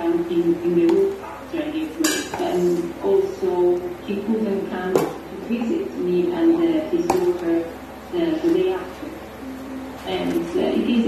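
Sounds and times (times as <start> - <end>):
kitchenware clink: 2.0 - 2.5.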